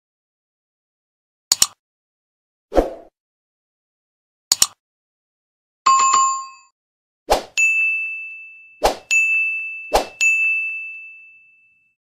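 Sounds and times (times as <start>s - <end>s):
sharp click: 1.5s - 1.8s, 4.5s - 4.8s
bell ding: 5.9s - 6.7s, 7.6s - 12.0s.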